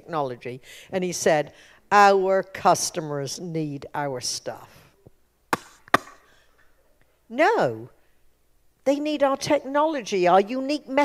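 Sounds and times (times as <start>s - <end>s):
hand slaps: 5.5s - 6.3s.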